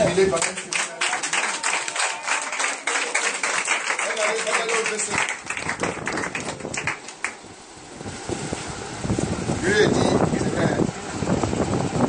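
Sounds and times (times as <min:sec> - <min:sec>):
scattered hand claps: 0:00.3 - 0:07.4.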